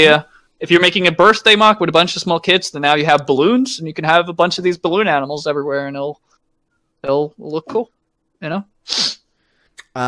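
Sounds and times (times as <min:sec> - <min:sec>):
man speaking: 0:00.0 - 0:06.2, 0:07.0 - 0:09.1, 0:09.8 - 0:10.0
sharp hiss-like burst: 0:08.9 - 0:09.2.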